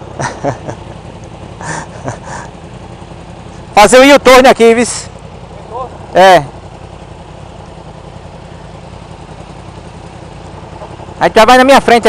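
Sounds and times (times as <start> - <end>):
man laughing: 0.0 - 2.6
motorcycle engine idling: 0.0 - 12.0.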